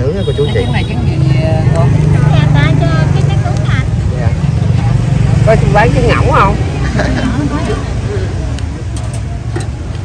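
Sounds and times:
people talking: 0.0 - 9.0.

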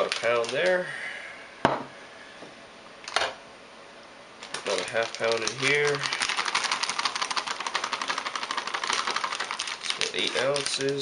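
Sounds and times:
plastic bag crinkling: 0.0 - 0.8, 4.4 - 11.0
powder pouring into bowl: 4.4 - 11.0.

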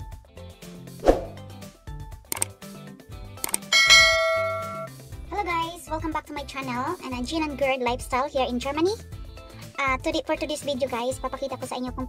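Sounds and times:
mouse clicks: 2.3 - 2.5
bright bell ding: 3.7 - 4.9.

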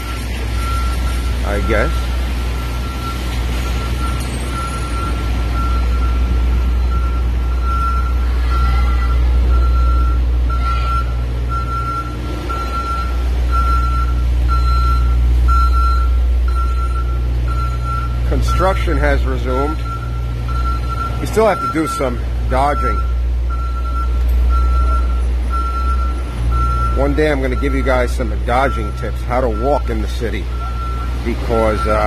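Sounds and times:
heavy engines and traffic rumble: 0.0 - 32.0
truck reversing alarm beeping: 0.0 - 32.0.

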